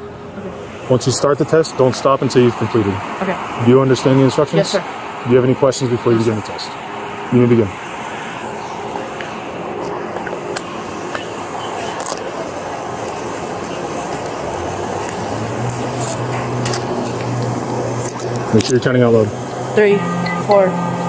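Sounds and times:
roadside traffic: 0.0s - 21.0s
vehicle idling: 0.0s - 21.0s
low engine hum: 5.0s - 21.0s.

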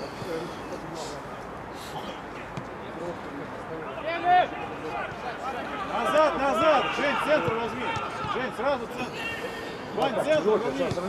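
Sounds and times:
men calling out: 3.9s - 10.4s.

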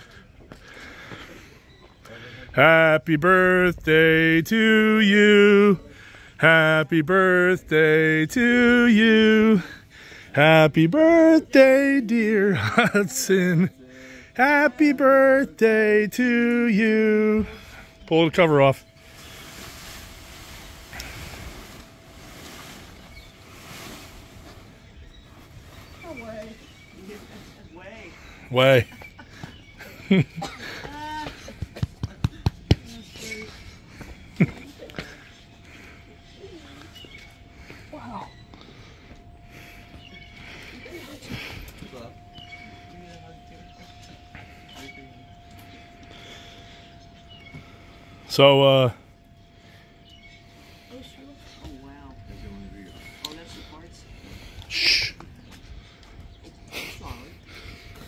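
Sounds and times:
murmured voices: 0.0s - 19.7s, 26.0s - 58.0s
thin steady tone: 3.0s - 28.9s, 33.2s - 58.0s
soft breaths: 5.8s - 6.4s
fabric cover rustling and dragging: 19.0s - 26.4s.

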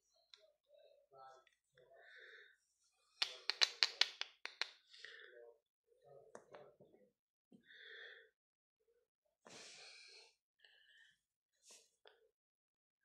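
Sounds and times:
chocolate bar snapping: 3.2s - 4.7s.

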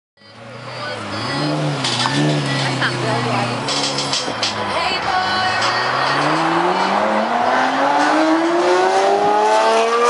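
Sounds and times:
car engine idling: 0.2s - 8.6s
engine revving blip: 0.8s - 10.0s.

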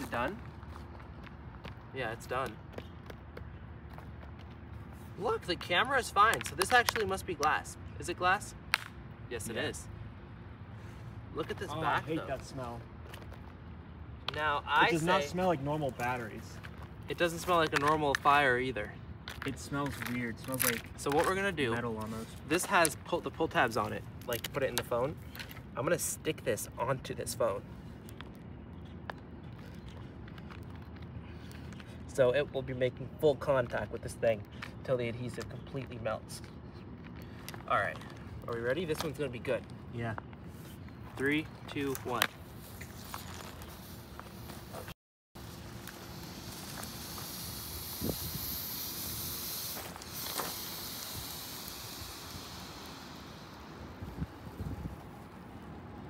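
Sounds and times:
low outdoor background hum: 0.0s - 56.0s
hiss of escaping gas: 46.0s - 54.6s.

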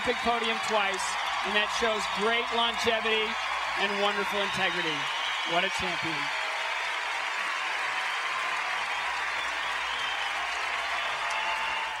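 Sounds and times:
crowd clapping: 0.0s - 12.0s.

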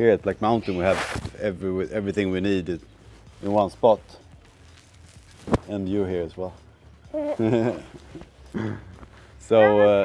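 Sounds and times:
person laughing briefly: 7.3s - 8.0s.

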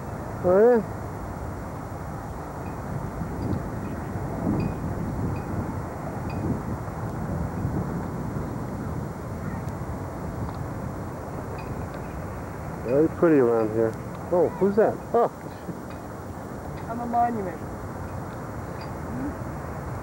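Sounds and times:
distant traffic: 0.0s - 20.0s
wind rumble on microphone: 0.0s - 20.0s.

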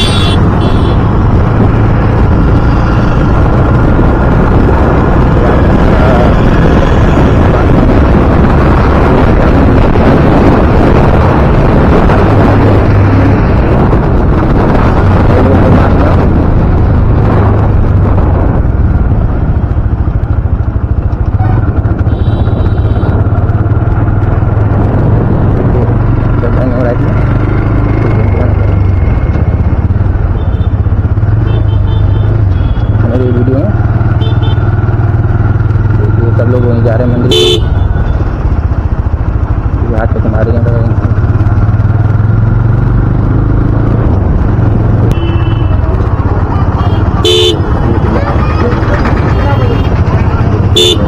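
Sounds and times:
vehicle horn honks: 0.0s - 1.0s, 21.4s - 23.2s, 34.2s - 34.6s, 37.3s - 38.1s, 45.1s - 45.8s, 46.8s - 47.8s, 50.7s - 51.0s
motorcycle engine running: 0.0s - 51.0s
road and wind noise: 0.0s - 51.0s.

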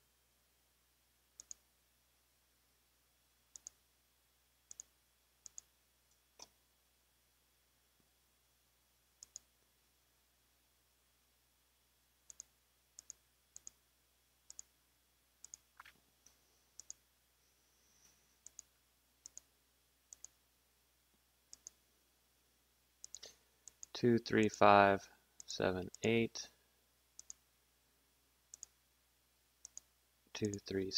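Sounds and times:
computer mouse clicks: 1.4s - 1.6s, 3.5s - 3.8s, 4.7s - 6.6s, 9.2s - 9.5s, 12.3s - 13.8s, 14.5s - 14.7s, 15.4s - 16.0s, 16.8s - 17.0s, 18.4s - 19.5s, 20.1s - 20.4s, 21.5s - 21.8s, 23.0s - 23.9s, 27.2s - 27.4s, 28.5s - 28.8s, 29.6s - 30.6s.

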